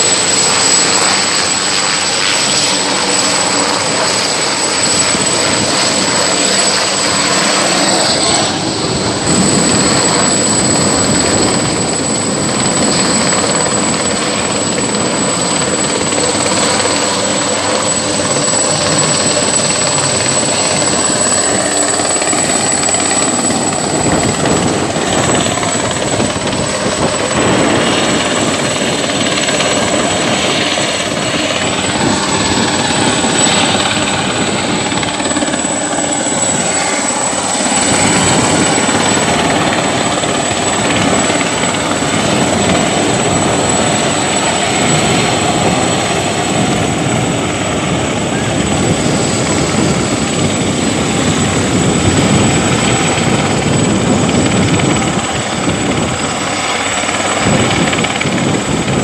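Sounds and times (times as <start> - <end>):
thin high whine: 0.0 - 58.2
helicopter rotor and engine: 0.0 - 59.0.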